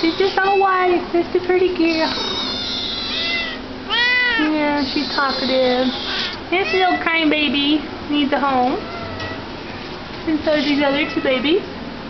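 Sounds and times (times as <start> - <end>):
cat meowing: 2.0 - 7.0, 8.8 - 9.5.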